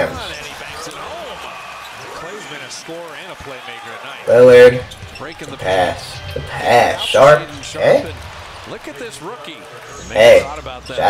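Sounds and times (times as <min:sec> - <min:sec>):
arena background noise: 0:00.0 - 0:03.3, 0:03.9 - 0:11.0
commentator talking: 0:00.0 - 0:11.0.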